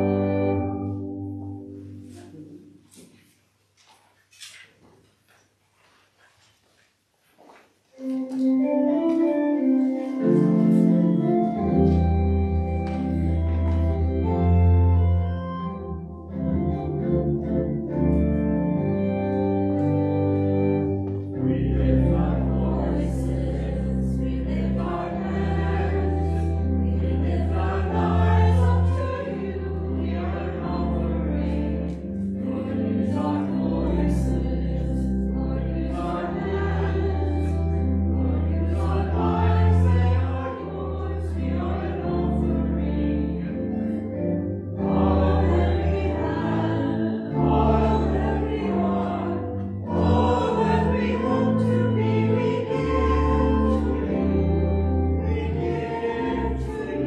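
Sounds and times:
sustained organ chords: 0:00.0 - 0:02.8, 0:08.0 - 0:57.0
held accompanying notes: 0:07.9 - 0:57.0
group singing a hymn: 0:20.5 - 0:57.0.

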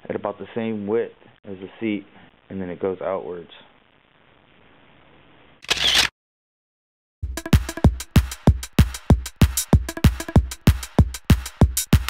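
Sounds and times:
camera shutter sound effect: 0:05.6 - 0:06.1.

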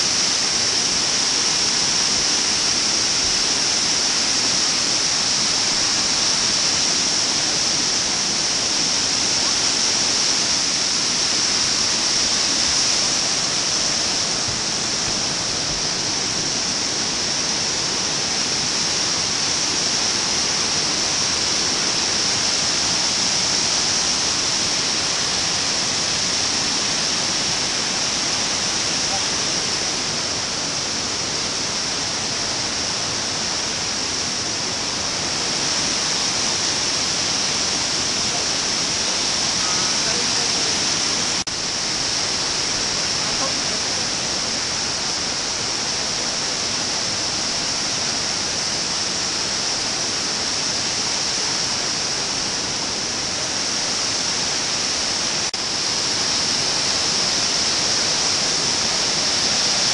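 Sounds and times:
waterfall roaring: 0:00.0 - 0:59.9.

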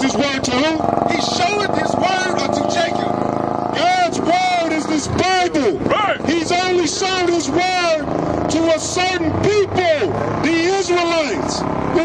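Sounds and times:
men preaching through microphone: 0:00.0 - 0:12.0
steady engine-like drone: 0:00.0 - 0:12.0.

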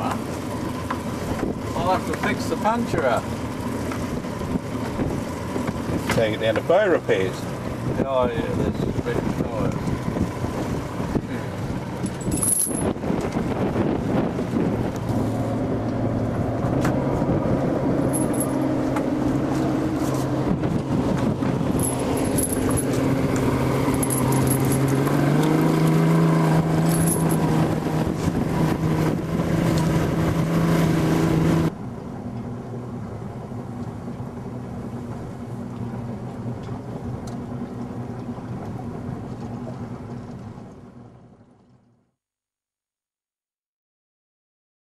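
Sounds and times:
motorboat engine running: 0:00.0 - 0:42.2
wind on microphone: 0:07.7 - 0:31.7
high metallic clinks: 0:21.8 - 0:22.9, 0:23.9 - 0:24.9, 0:26.9 - 0:27.4.

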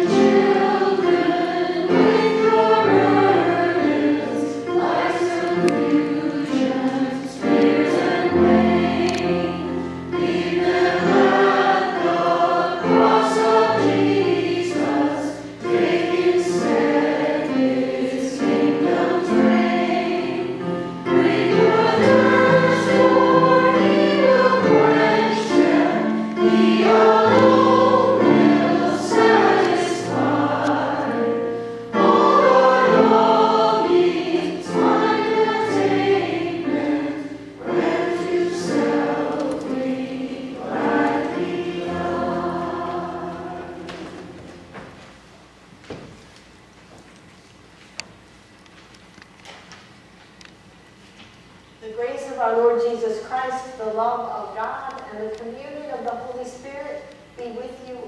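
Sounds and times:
congregation singing a hymn: 0:00.0 - 0:45.1.

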